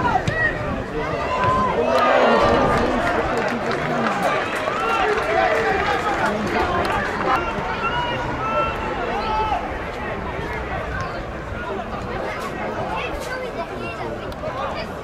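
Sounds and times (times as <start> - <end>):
crowd murmur: 0.0 - 15.0
players and spectators shouting: 0.0 - 15.0.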